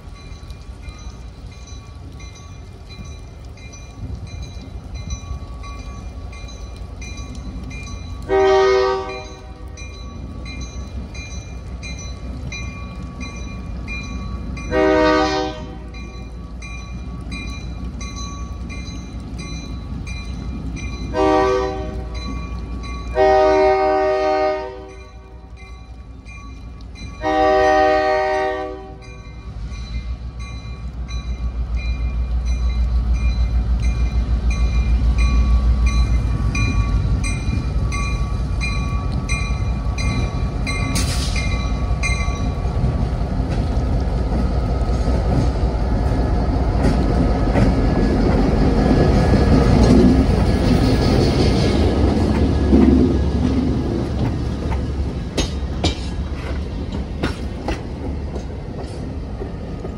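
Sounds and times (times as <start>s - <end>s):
crossing bell ringing: 0.1s - 42.9s
locomotive horn blasts: 8.3s - 9.7s, 14.7s - 15.9s, 21.1s - 22.2s, 23.1s - 25.2s, 27.2s - 29.1s.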